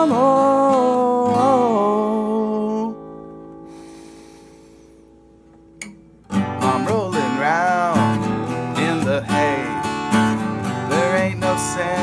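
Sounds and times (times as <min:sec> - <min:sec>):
person singing: 0:00.0 - 0:03.2, 0:06.4 - 0:12.0
acoustic guitar chord ringing: 0:00.0 - 0:12.0.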